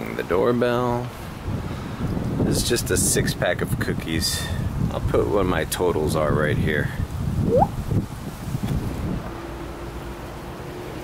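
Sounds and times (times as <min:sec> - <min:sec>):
wind rumbling on microphone: 0:01.4 - 0:09.3
short rising tone: 0:07.5 - 0:07.7.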